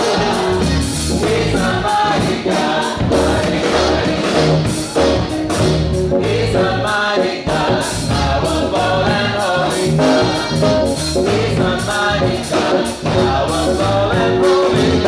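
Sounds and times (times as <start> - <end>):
electric bass guitar: 0.0 - 2.4, 3.0 - 15.0
drum kit beat: 0.0 - 15.0
gospel choir singing: 0.0 - 15.0.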